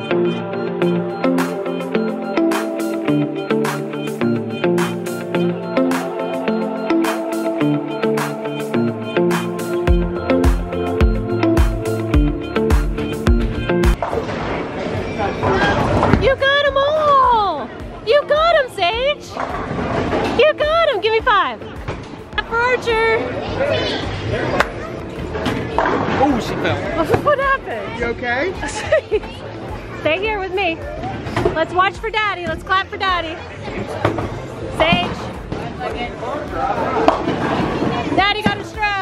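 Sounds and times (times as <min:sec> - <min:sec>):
chatter and rumble: 0:14.2 - 0:39.0.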